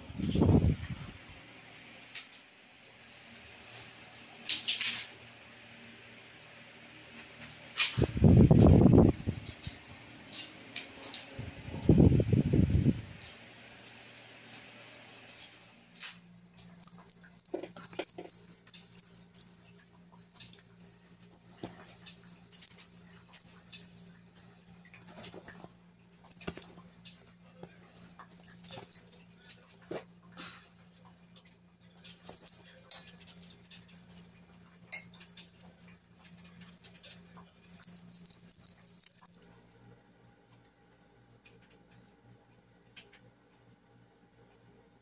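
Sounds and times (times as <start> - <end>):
faint low hum: 16.0 - 31.4.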